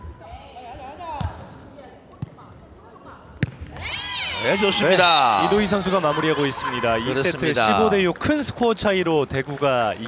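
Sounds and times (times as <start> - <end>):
ball kicked and bouncing: 3.4 - 3.8.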